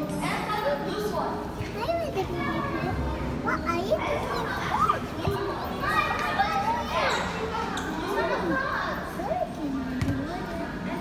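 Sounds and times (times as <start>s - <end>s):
chatter of children and visitors: 0.0s - 11.0s.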